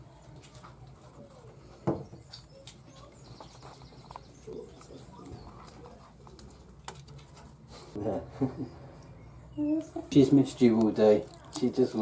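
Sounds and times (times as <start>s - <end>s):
animal tapping and rustling: 0.1s - 7.9s.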